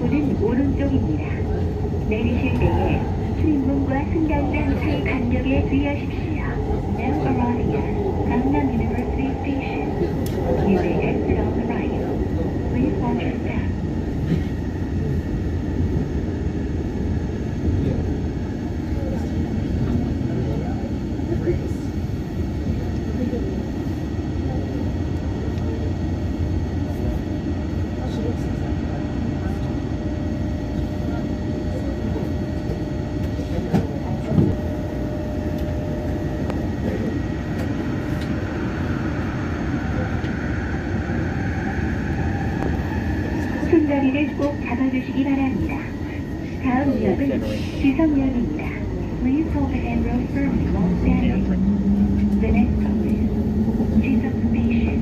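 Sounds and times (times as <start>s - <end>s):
train rumbling on track: 0.0s - 55.0s.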